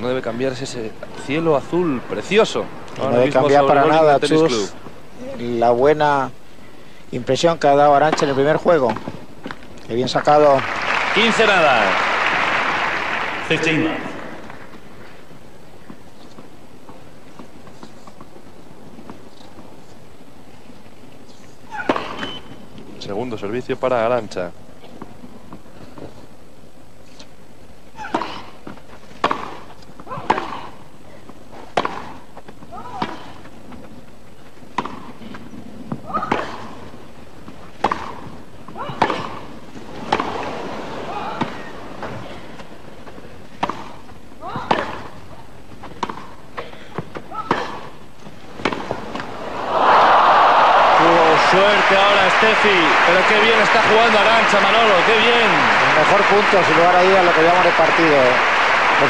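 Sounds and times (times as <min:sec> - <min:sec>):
crowd applauding and cheering: 0:10.2 - 0:14.4, 0:49.4 - 0:59.0
tennis ball being struck: 0:31.7 - 0:32.2, 0:37.8 - 0:38.3, 0:38.9 - 0:39.5.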